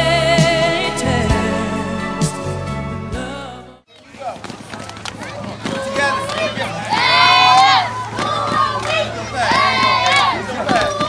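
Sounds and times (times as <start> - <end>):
crowd noise: 0.0 - 11.0
children shouting a cheer: 5.1 - 11.0.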